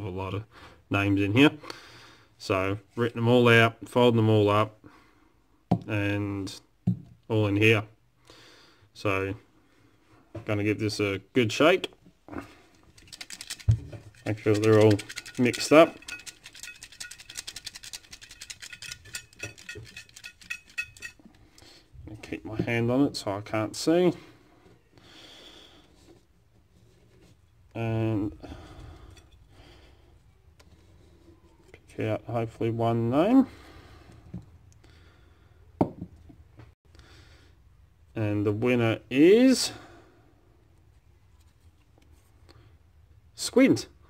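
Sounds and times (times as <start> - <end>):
paper slips rattling in a cup: 12.7 - 21.3.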